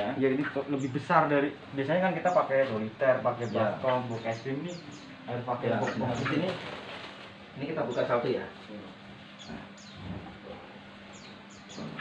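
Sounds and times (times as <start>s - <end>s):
small bird chirping: 0.0s - 2.6s, 3.2s - 6.8s, 9.3s - 10.3s, 11.0s - 12.0s.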